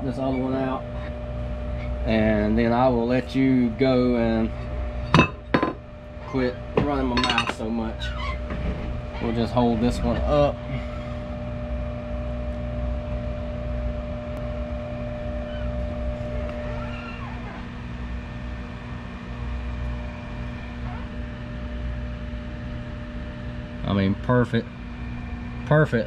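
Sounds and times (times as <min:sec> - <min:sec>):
machine hum: 0:00.0 - 0:26.0.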